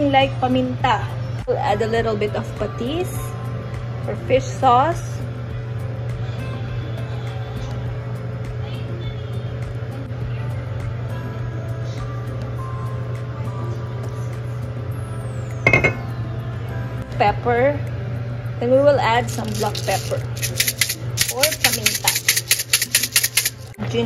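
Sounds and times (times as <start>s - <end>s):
small glass bottle clink: 15.7s - 16.1s.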